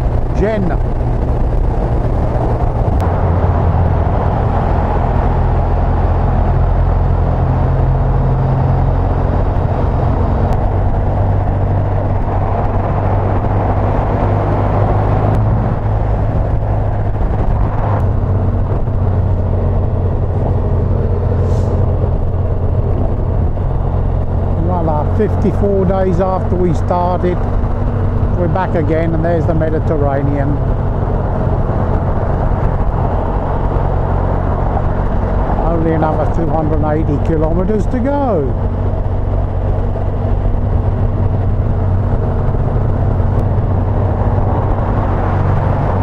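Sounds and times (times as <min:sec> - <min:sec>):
motorcycle engine drone: 0:00.0 - 0:46.0
wind and road rush: 0:00.0 - 0:46.0.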